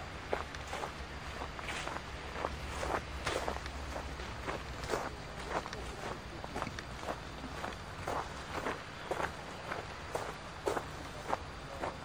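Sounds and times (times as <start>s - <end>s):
footsteps on gravel: 0.2s - 12.0s.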